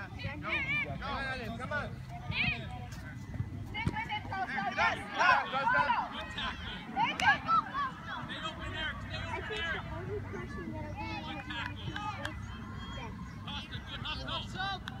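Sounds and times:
voices shouting and calling out: 0.0s - 15.0s.

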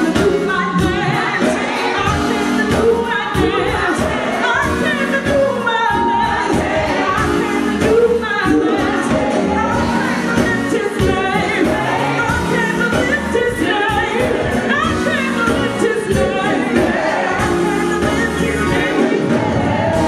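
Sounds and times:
backing voices singing: 0.0s - 20.0s
band with drums: 0.0s - 20.0s
woman singing into a microphone: 0.0s - 20.0s.

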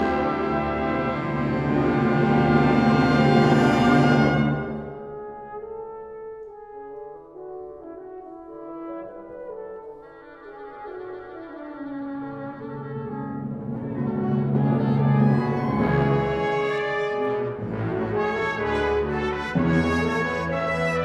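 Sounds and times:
brass: 0.0s - 21.0s
symphony orchestra playing: 0.0s - 21.0s.

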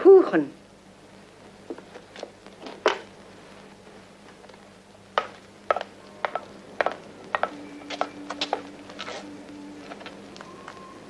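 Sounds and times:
steady low tone: 4.8s - 11.0s.

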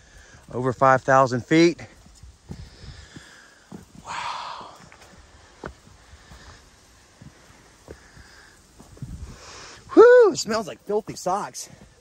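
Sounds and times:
person breathing: 0.0s - 0.5s, 2.4s - 9.9s
faint footsteps on rock steps: 1.8s - 9.3s, 11.0s - 12.0s.

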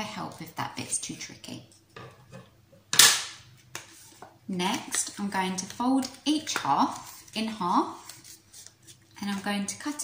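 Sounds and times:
stiff paper crackling: 5.0s - 9.2s.

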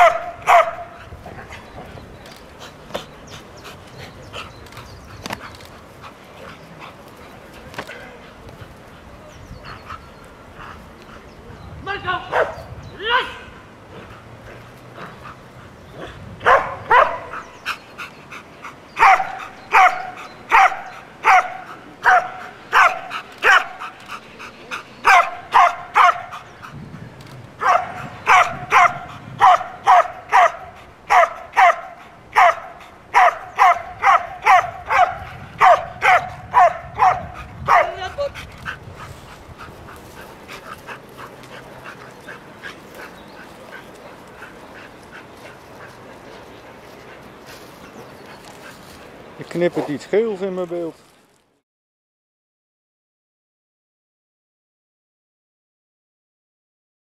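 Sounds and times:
dog barking: 0.0s - 1.0s, 12.3s - 12.7s, 16.4s - 17.5s, 19.0s - 23.9s, 25.0s - 26.4s, 27.6s - 38.0s.

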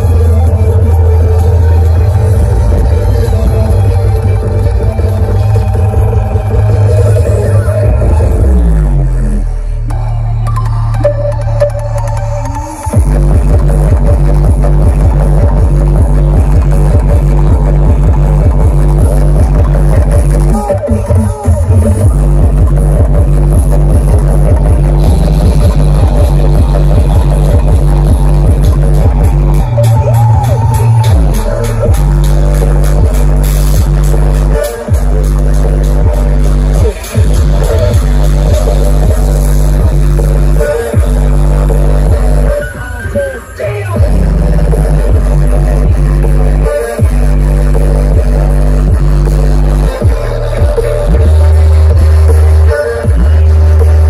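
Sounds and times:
electronic dance music: 0.0s - 54.0s.

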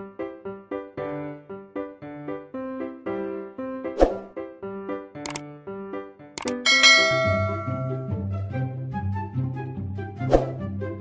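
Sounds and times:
mouse clicks: 5.2s - 5.4s, 6.4s - 6.6s
bouncy keyboard music: 6.4s - 8.4s.

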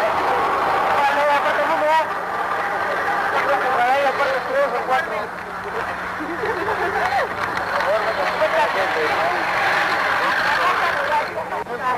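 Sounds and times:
crowd shouting: 0.0s - 4.8s, 7.0s - 11.4s.

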